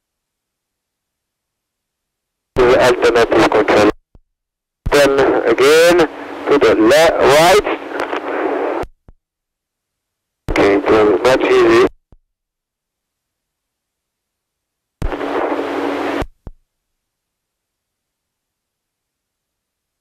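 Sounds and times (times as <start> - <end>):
man's voice over two-way radio: 2.6 - 4.0, 4.9 - 8.2, 10.5 - 11.9.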